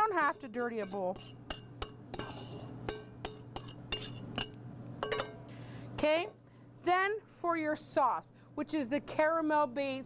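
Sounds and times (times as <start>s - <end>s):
spatula scraping metal bowl: 0.0s - 4.6s.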